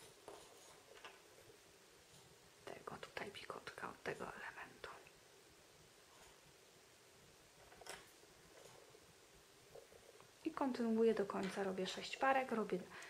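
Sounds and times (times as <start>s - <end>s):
woman whispering: 2.6s - 5.2s.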